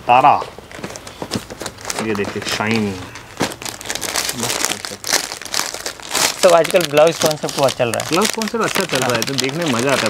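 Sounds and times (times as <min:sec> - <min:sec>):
plastic packaging crinkling: 0:00.7 - 0:10.0.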